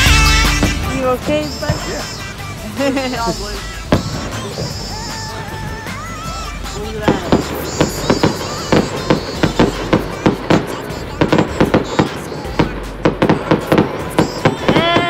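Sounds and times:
fireworks bangs and crackles: 0:00.0 - 0:15.0
high-pitched tone: 0:00.0 - 0:15.0.

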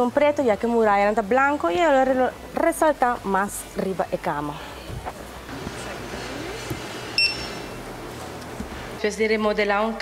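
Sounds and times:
store background noise: 0:00.0 - 0:10.0
short high beep: 0:07.2 - 0:07.7.

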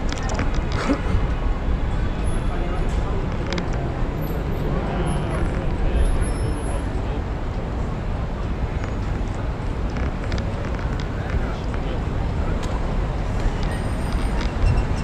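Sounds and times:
passing road traffic: 0:00.0 - 0:15.0
wind rumble on microphone: 0:00.0 - 0:15.0.

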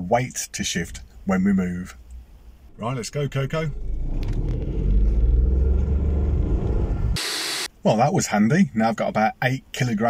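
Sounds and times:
car engine rumbling: 0:00.4 - 0:07.2.

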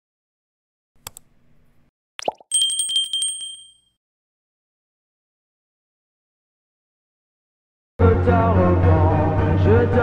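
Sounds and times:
bright bell ding: 0:02.3 - 0:03.9.

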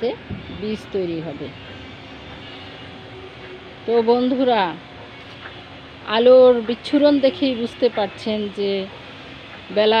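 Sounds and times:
woman's voice: 0:00.0 - 0:01.6, 0:03.9 - 0:04.8, 0:06.1 - 0:08.9, 0:09.7 - 0:10.0.

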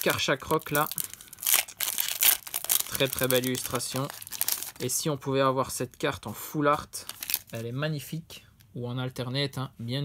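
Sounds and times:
trading cards rustling and crinkling: 0:00.0 - 0:05.1, 0:06.7 - 0:07.8.

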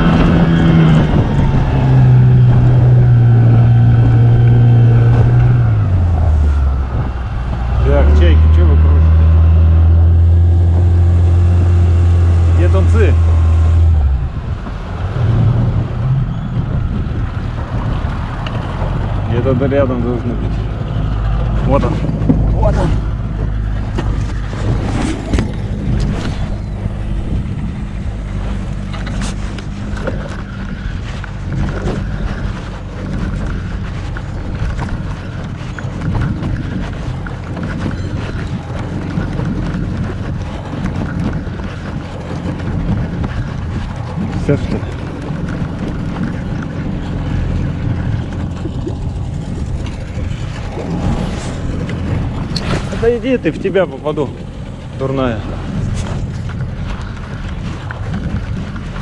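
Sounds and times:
outboard motor humming: 0:00.0 - 0:59.0
water noise: 0:00.0 - 0:59.0
wind: 0:00.0 - 0:59.0.

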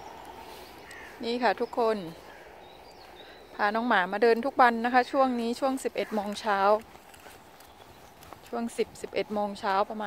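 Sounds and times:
woman's voice: 0:01.2 - 0:02.4, 0:03.5 - 0:06.9, 0:08.5 - 0:10.0
footsteps on brick paving: 0:04.2 - 0:10.0.

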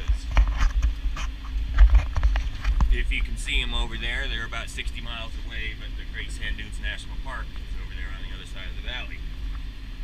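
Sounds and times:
tractor engine rumbling: 0:00.0 - 0:10.0.

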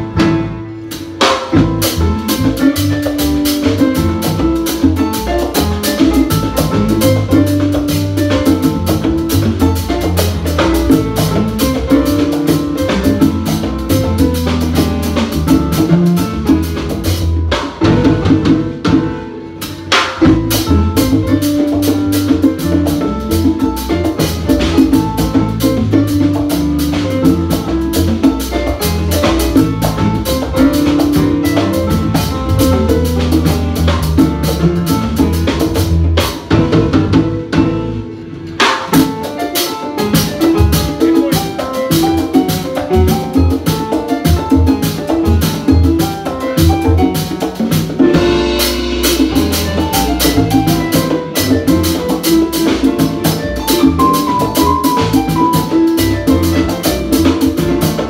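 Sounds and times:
latin jazz band playing: 0:00.0 - 0:58.0
piano guajeo: 0:00.0 - 0:58.0.

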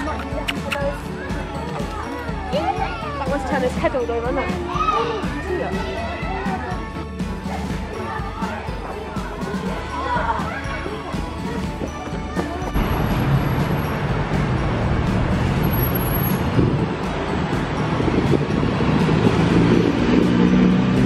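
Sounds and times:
background music: 0:00.0 - 0:21.0
traffic noise: 0:11.4 - 0:21.0
motor vehicle running: 0:12.7 - 0:21.0.

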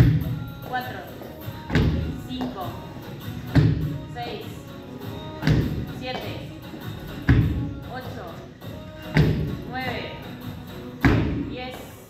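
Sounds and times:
background music with singing: 0:00.0 - 0:12.0.

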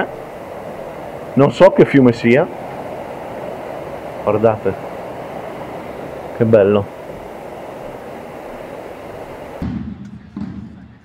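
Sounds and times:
river rushing over rocks: 0:00.0 - 0:09.6.

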